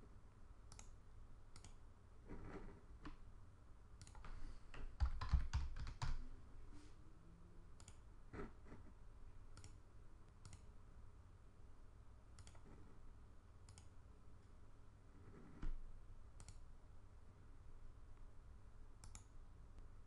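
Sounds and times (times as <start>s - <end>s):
mouse clicks: 0.7s - 1.8s, 7.8s - 8.0s, 9.5s - 10.7s, 12.3s - 12.8s, 13.6s - 14.0s, 16.4s - 16.7s, 19.0s - 19.9s
faint keyboard typing: 0.7s - 3.2s, 4.0s - 6.3s, 7.8s - 10.7s, 12.3s - 13.0s, 13.6s - 14.0s, 15.2s - 16.7s, 19.0s - 19.9s.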